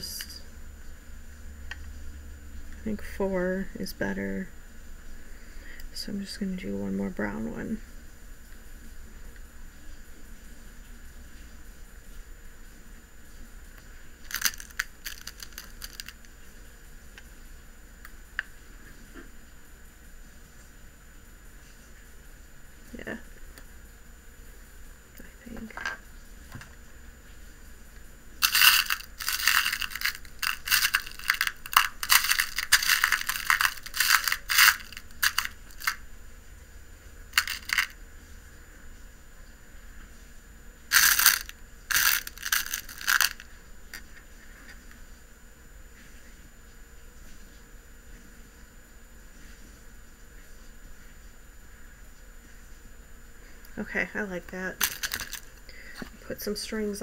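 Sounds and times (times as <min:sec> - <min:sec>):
glass beads clattering in plastic box: 0:14.2 - 0:16.3, 0:28.4 - 0:36.0, 0:37.4 - 0:38.0, 0:40.9 - 0:43.4, 0:54.8 - 0:55.5.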